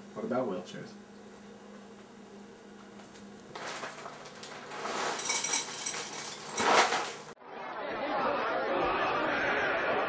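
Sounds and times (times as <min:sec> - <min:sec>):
dry cereal rattling into a bowl: 0:03.6 - 0:07.3.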